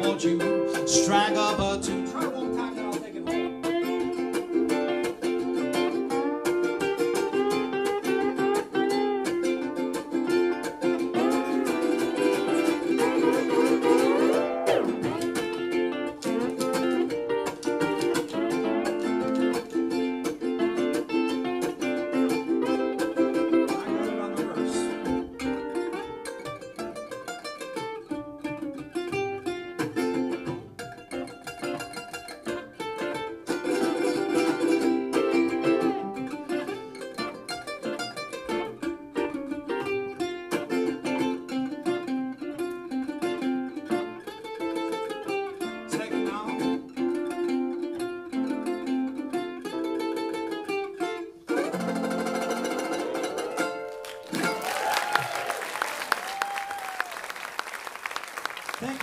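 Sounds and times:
ukulele and lap steel guitar: 0.0s - 59.0s
audience applause: 53.8s - 59.0s.

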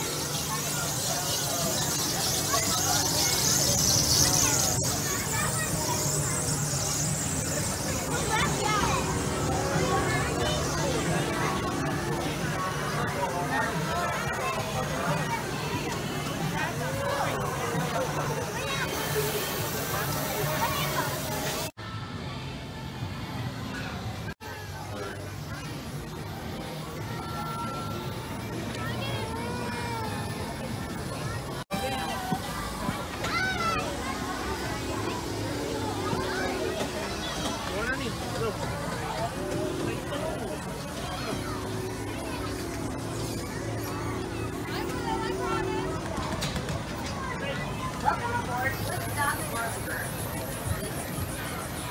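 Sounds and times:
children's voices and chatter: 0.0s - 51.9s.

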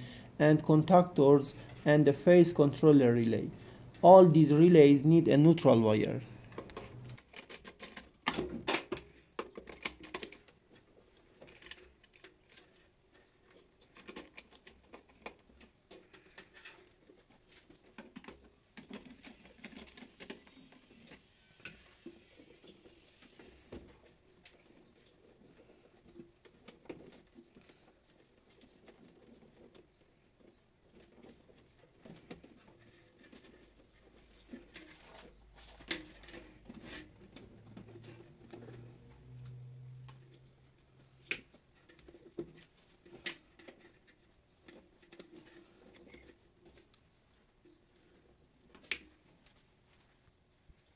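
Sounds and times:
wire rustling and clicking: 6.0s - 50.4s
faint low hum: 8.6s - 50.9s.

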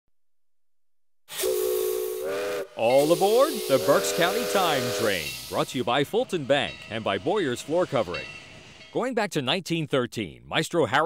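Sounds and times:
steam locomotive whistle: 1.3s - 5.9s
steam hiss: 1.3s - 8.8s.

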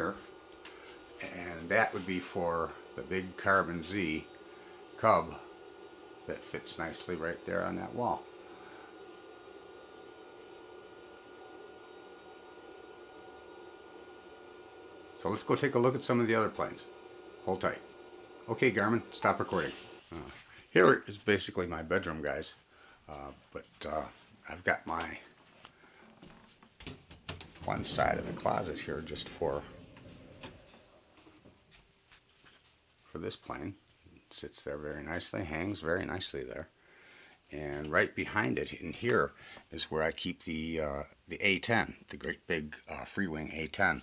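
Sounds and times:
thin steady high tone: 0.0s - 22.5s, 27.6s - 31.5s
faint steady hiss: 0.0s - 44.0s.

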